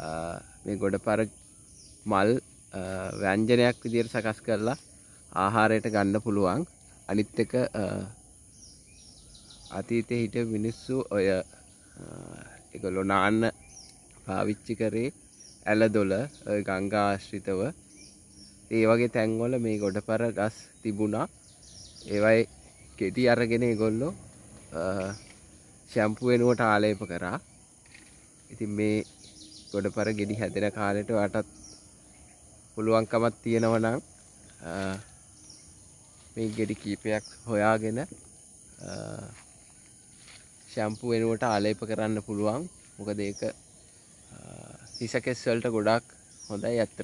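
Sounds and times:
man speaking: 0:00.0 - 0:01.4, 0:02.0 - 0:08.2, 0:09.7 - 0:13.6, 0:14.2 - 0:17.8, 0:18.7 - 0:21.3, 0:22.0 - 0:25.3, 0:25.9 - 0:27.5, 0:28.5 - 0:29.1, 0:29.7 - 0:31.5, 0:32.8 - 0:35.1, 0:36.3 - 0:38.2, 0:38.8 - 0:39.4, 0:40.7 - 0:43.6, 0:44.3 - 0:47.0
insects chirring: 0:00.0 - 0:47.0
cow lowing: 0:12.0 - 0:12.5.

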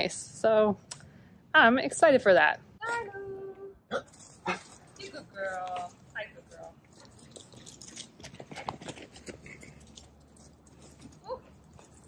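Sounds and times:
dog paws clicking and scuffing: 0:04.1 - 0:12.0.

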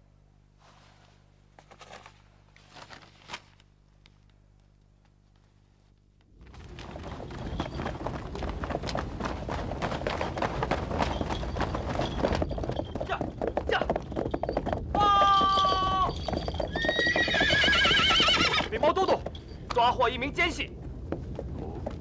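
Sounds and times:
horses galloping: 0:06.3 - 0:22.0
horse whinnying: 0:14.9 - 0:18.9.

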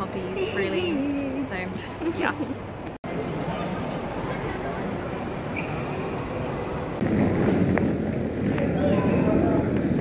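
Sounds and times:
large hall background noise: 0:00.0 - 0:10.0.

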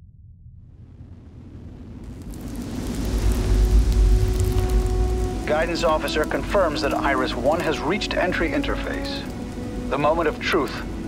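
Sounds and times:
deep rumble: 0:00.0 - 0:11.0
crackling hiss: 0:00.8 - 0:11.0.

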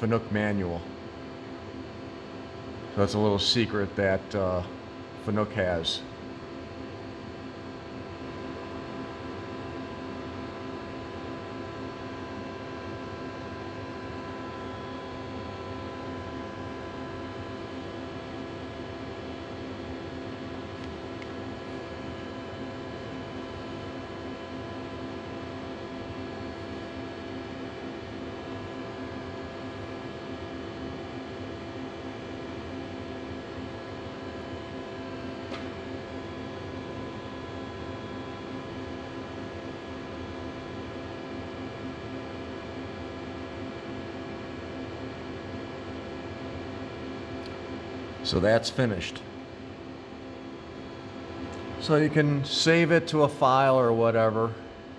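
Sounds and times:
machine hum: 0:00.0 - 0:44.5, 0:45.1 - 0:54.9.

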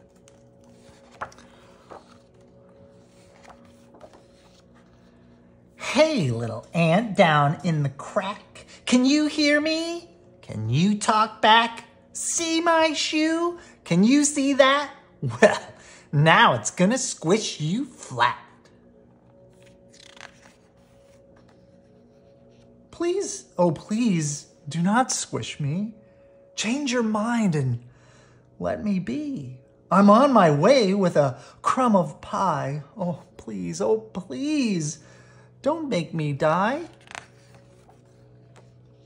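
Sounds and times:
book page turning: 0:00.0 - 0:05.5, 0:19.2 - 0:22.9, 0:36.6 - 0:39.0
low hum: 0:00.0 - 0:09.0.

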